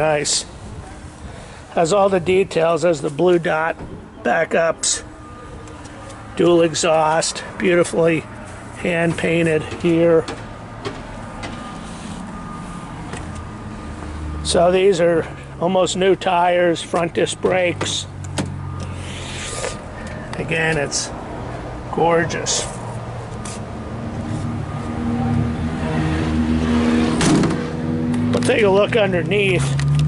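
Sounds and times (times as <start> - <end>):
low engine rumble: 0.0 - 30.0.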